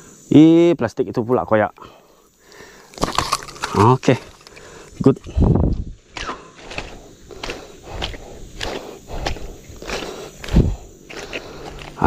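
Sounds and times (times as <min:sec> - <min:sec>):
footsteps on twigs and dead leaves: 0:02.9 - 0:12.0.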